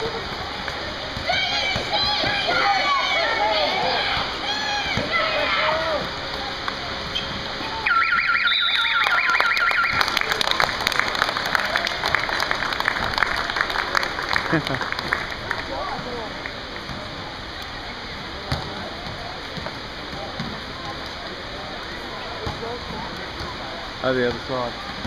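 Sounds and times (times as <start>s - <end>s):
voices shouting: 1.1s - 6.2s
pulsing electronic buzzer: 7.8s - 10.1s
people clapping: 8.8s - 16.9s.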